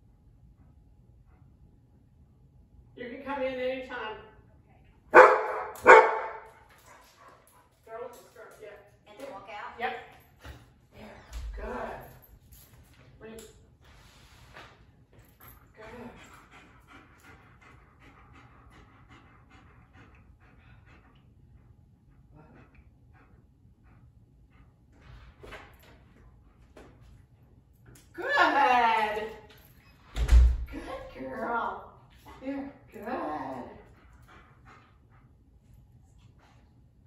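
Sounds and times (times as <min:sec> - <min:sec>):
dog barking: 0:05.1 - 0:06.5.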